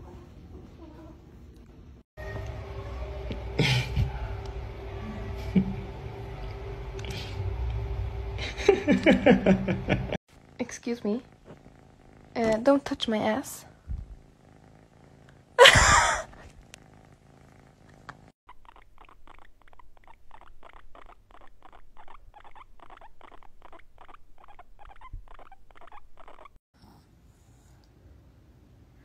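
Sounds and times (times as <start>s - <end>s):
kitten purring: 10.3s - 26.6s
guinea pig purring chirps: 16.6s - 26.6s.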